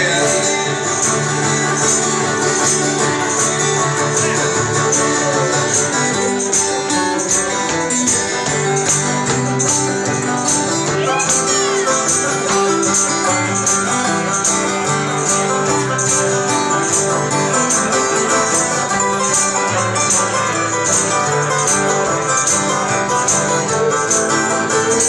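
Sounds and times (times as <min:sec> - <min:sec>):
picked banjo: 0:00.0 - 0:25.0
strummed acoustic guitars: 0:00.0 - 0:25.0.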